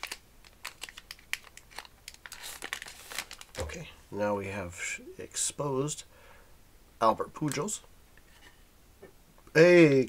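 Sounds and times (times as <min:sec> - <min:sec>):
plastic wrapper crinkling: 0:00.0 - 0:03.9.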